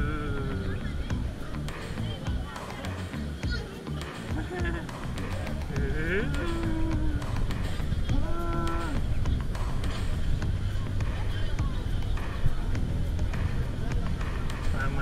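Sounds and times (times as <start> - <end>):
steady low rumble: 0.0 - 2.6, 4.0 - 15.0
bathers' voices: 0.0 - 15.0.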